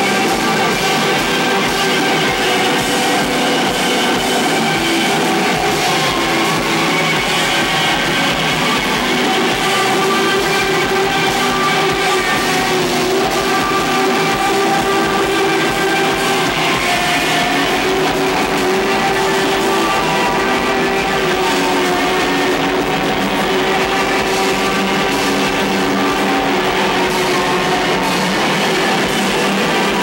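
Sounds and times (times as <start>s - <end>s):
live rock band playing: 0.0s - 30.0s.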